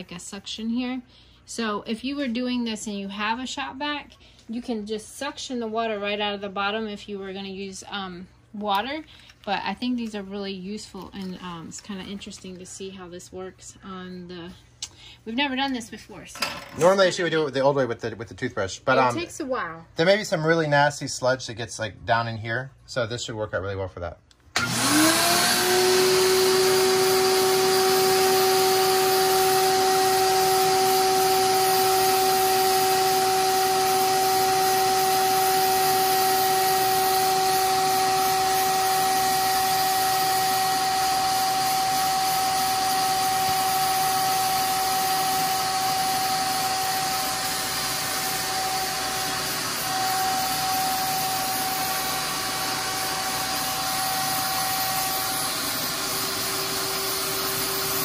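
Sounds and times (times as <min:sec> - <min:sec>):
shop vacuum motor whining: 0:24.5 - 0:58.0.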